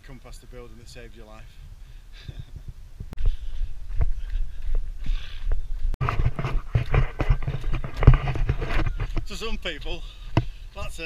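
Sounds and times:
running footsteps on gritty trail: 1.4 - 11.0.

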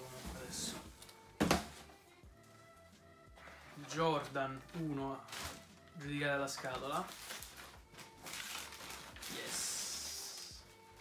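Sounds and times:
tissue paper rustling: 3.8 - 6.0, 6.6 - 11.0.

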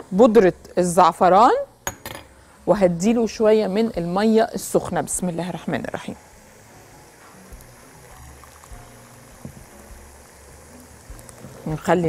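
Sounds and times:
quiet background music: 0.0 - 12.0
water trickling into glass bowl: 7.5 - 10.0.

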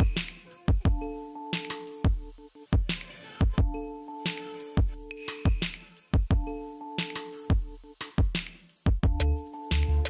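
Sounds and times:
electronic music with beat: 0.0 - 10.0
kick drum thumps: 2.1 - 3.8, 4.8 - 6.5, 7.5 - 9.2.

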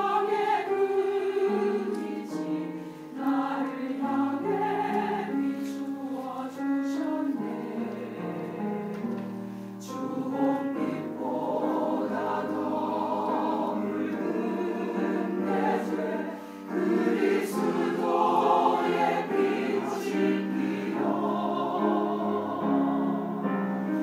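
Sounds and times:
choir singing sacred anthem: 0.0 - 24.0.

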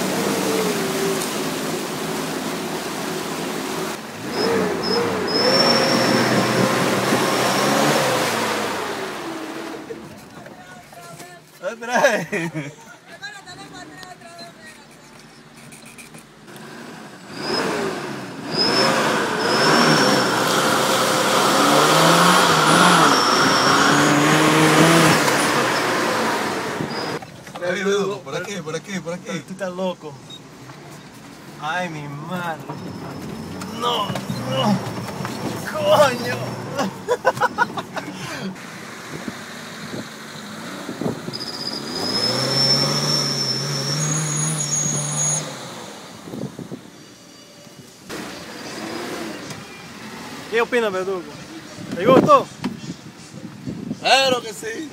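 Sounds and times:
car engine revving: 0.0 - 10.3, 16.4 - 29.4, 32.3 - 46.9, 48.1 - 51.4
tyres rushing through water: 0.0 - 12.8, 16.5 - 47.3, 48.0 - 53.2
tyres spinning in dirt: 32.2 - 38.6.

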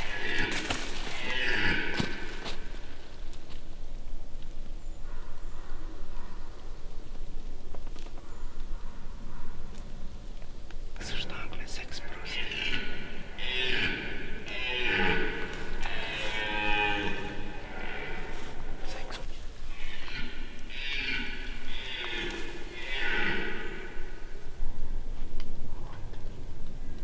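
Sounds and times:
hushed whispering voices: 11.0 - 13.0, 18.7 - 19.3.

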